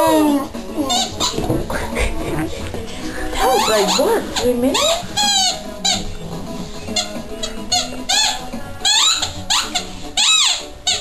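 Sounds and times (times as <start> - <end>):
dog whining: 0.0 - 1.4, 6.9 - 11.0.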